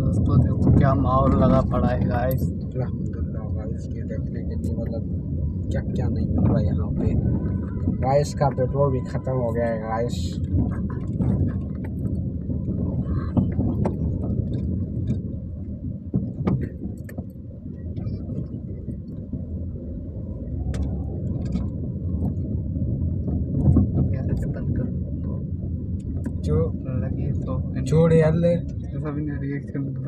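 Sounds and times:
engine and road rumble: 0.0 - 30.0
light clicks and rattles: 10.2 - 19.4.

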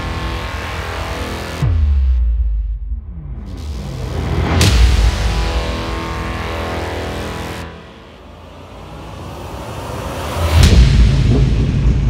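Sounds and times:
car engine: 0.0 - 1.8, 3.2 - 12.0
intro music: 0.0 - 12.0.

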